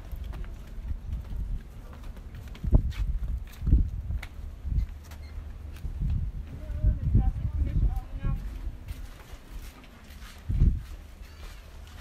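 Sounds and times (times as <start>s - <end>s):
footsteps on wooden planks: 0.0s - 12.0s
steady low rumble: 0.0s - 12.0s.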